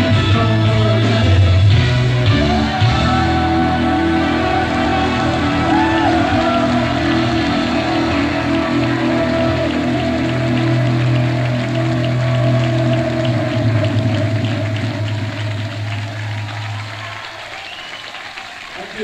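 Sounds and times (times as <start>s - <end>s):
audience applause and cheering: 0.0s - 19.0s.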